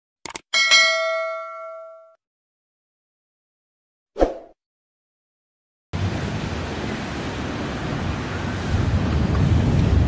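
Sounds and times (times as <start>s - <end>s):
bell ding: 0.6s - 2.2s.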